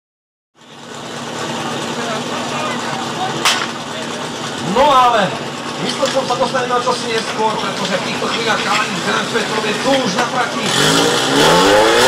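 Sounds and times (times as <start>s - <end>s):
steady engine-like hum: 0.6s - 12.0s
crowd chatter: 0.7s - 11.1s.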